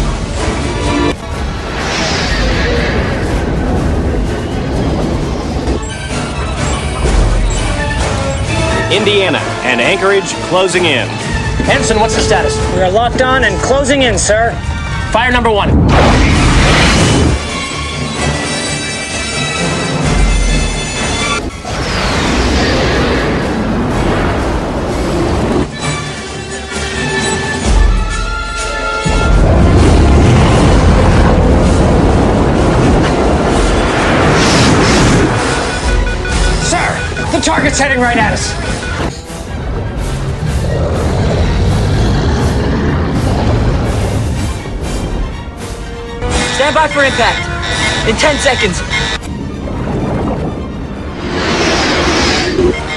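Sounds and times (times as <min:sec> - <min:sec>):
dramatic film score music: 0:00.0 - 0:52.9
heavy deep rumble: 0:00.1 - 0:08.9, 0:29.0 - 0:36.3, 0:39.1 - 0:46.4, 0:49.0 - 0:52.9
dense rushing noise: 0:01.1 - 0:06.1, 0:29.1 - 0:36.0, 0:39.4 - 0:45.5, 0:49.4 - 0:52.9
falling whoosh: 0:01.2 - 0:05.8, 0:50.0 - 0:52.9.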